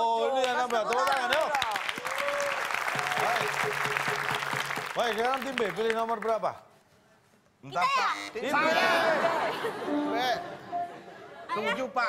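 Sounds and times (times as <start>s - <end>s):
studio audience applauding: 0.2s - 6.5s.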